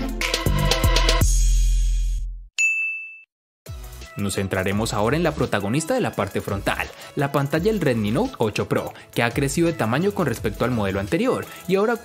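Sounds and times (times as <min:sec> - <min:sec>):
background music: 0:00.0 - 0:01.6, 0:03.7 - 0:12.0
high bright ding: 0:02.6 - 0:03.3.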